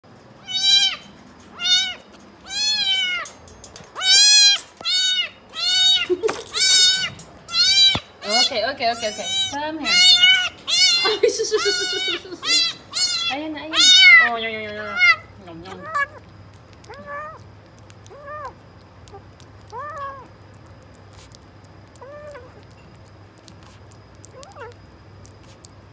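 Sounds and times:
kitten meowing: 0.4 - 3.4, 4.0 - 16.2, 16.8 - 17.4, 18.0 - 20.3, 21.9 - 22.7, 24.2 - 24.8.

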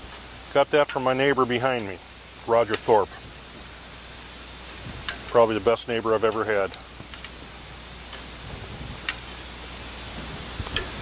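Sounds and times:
grill hissing: 0.0 - 11.0
metal tongs clicking on grill: 1.7 - 2.0, 2.6 - 3.0, 5.0 - 5.4, 6.2 - 7.4, 8.1 - 8.3, 9.0 - 9.3, 10.6 - 11.0.

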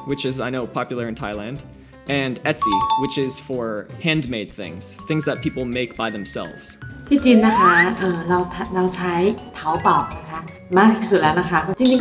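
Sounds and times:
background music: 0.0 - 12.0
woman speaking: 7.1 - 12.0.

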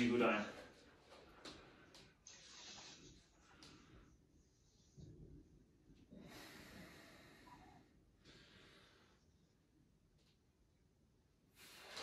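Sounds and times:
faint breathing: 6.0 - 9.6.

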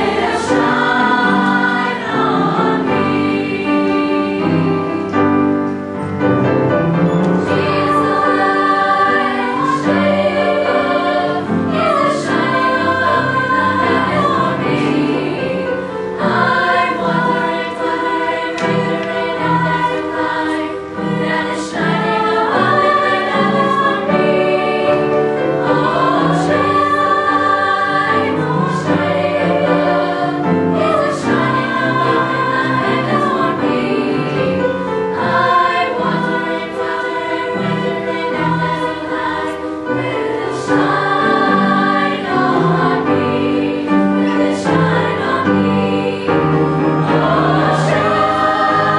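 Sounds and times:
children's choir singing: 0.0 - 48.9.

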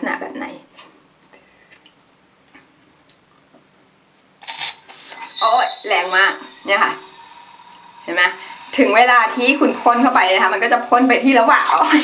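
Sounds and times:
water jet spraying into metal cup: 4.4 - 12.0.

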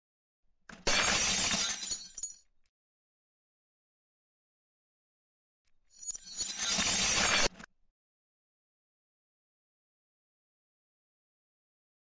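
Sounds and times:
glass shattering: 0.8 - 2.4, 6.0 - 7.5.

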